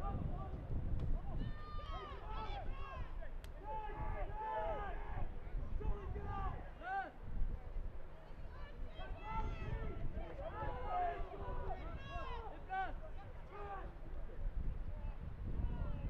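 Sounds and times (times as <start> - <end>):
people shouting calls: 1.2 - 7.2, 8.6 - 14.0.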